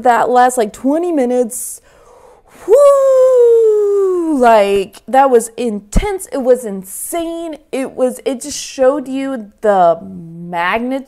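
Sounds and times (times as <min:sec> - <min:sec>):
woman shouting woo: 0:02.6 - 0:04.8.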